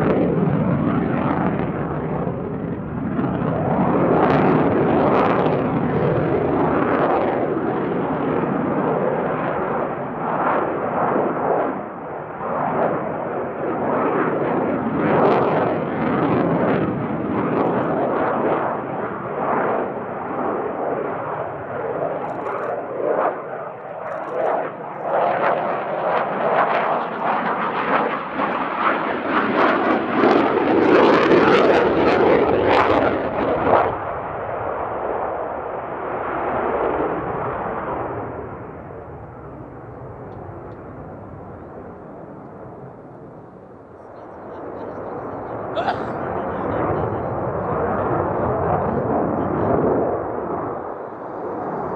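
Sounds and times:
jet noise with ragged crackle: 0.0 - 51.9.

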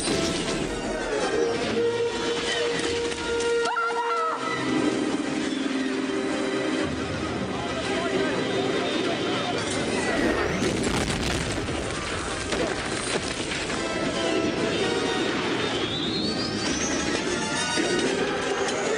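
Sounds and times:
orchestral score: 0.0 - 10.8, 13.1 - 18.9
blaster fire: 9.7 - 17.4
explosions: 9.7 - 17.4.

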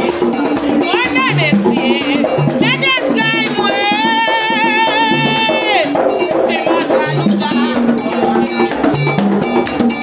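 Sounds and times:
people singing: 0.0 - 8.8
hand drums beating: 0.0 - 10.0.

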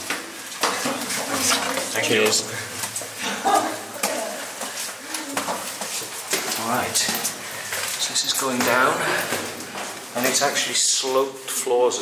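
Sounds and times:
footsteps on stone steps: 0.0 - 10.7.

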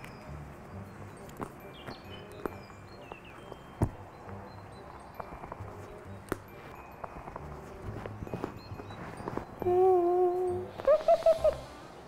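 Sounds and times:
light background music: 0.0 - 12.0
woman humming: 9.6 - 11.7
woman giggling: 9.7 - 11.6.

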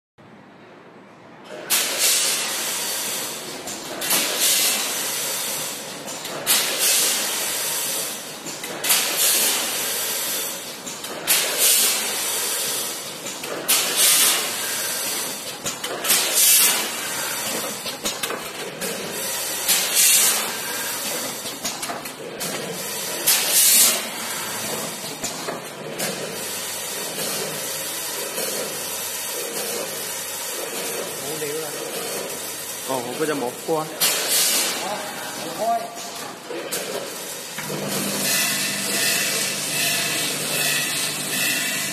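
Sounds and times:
steady machine noise: 36.4 - 41.9.

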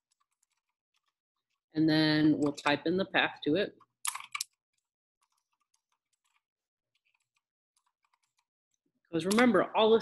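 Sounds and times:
keyboard typing: 0.1 - 1.6, 4.1 - 8.5.

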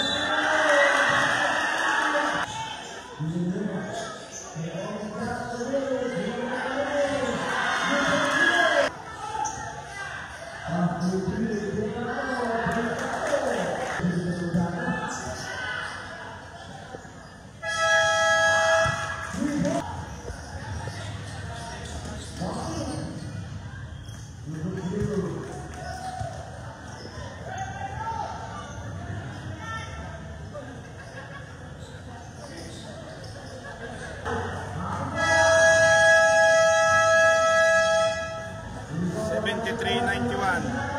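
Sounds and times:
low crowd noise: 0.0 - 40.9
horn-like buzzer tone: 17.6 - 19.4, 35.1 - 38.8.

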